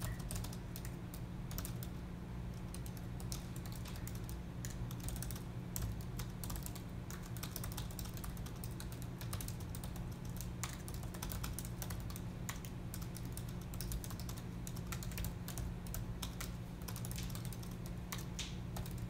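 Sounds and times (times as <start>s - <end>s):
laptop keyboard typing: 0.0s - 2.0s, 2.6s - 19.0s
steady low hum: 0.0s - 19.0s.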